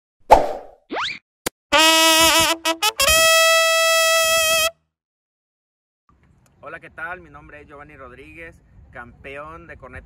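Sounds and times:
brass horn held note: 1.8 - 4.7.

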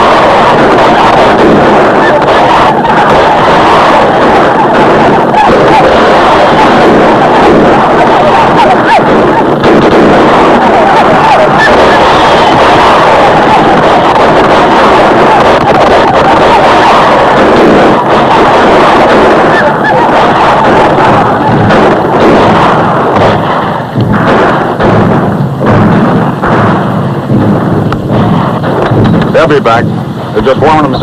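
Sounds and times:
rifle fire: 0.0 - 31.0.

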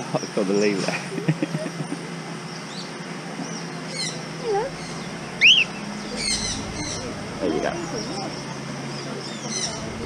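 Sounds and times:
high bird chirps: 2.5 - 10.0
rising and falling bird whistle: 3.9 - 7.2.

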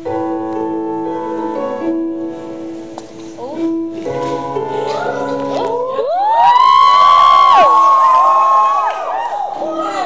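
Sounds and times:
piano music: 0.0 - 10.0
audience cheering and whooping: 6.0 - 10.0.

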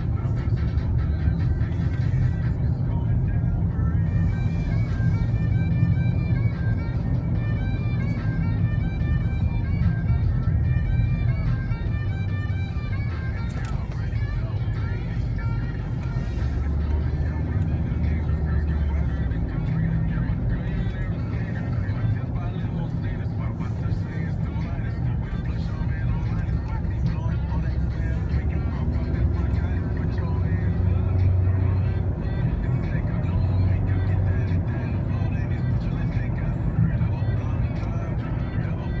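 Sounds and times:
car interior rumble: 0.0 - 39.0
music playing: 0.0 - 39.0.

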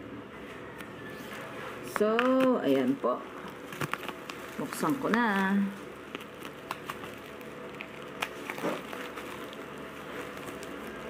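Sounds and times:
bubble wrap crinkling: 0.8 - 11.0.

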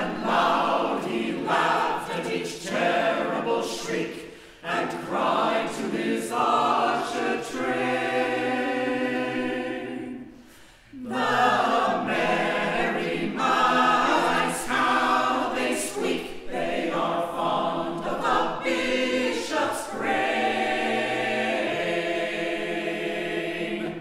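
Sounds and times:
a cappella choir singing: 0.0 - 24.0.

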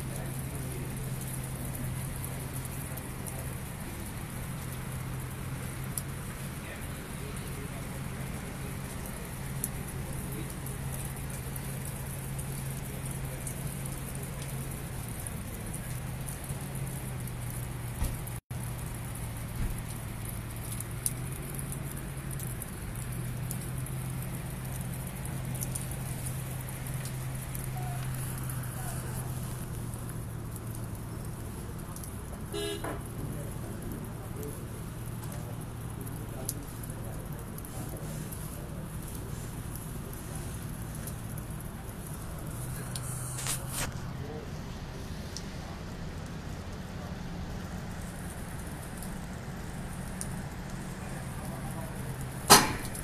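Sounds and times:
sharp ticks of icy drops: 0.0 - 44.2, 44.9 - 53.0
sleet pattering on cars and ground: 0.0 - 53.0.

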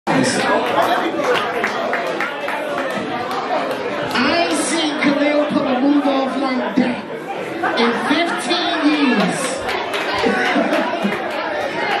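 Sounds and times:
crowd chatter in a large hall: 0.1 - 12.0.

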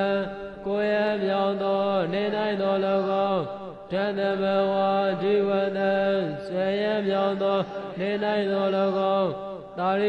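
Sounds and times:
man chanting slowly: 0.0 - 10.0.

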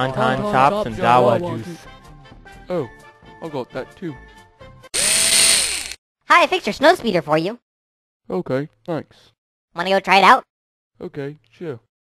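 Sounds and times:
electric drill whine: 5.0 - 6.0.

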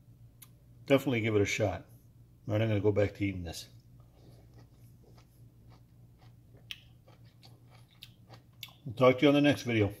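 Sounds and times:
faint chewing of juicy fruit: 3.2 - 10.0.

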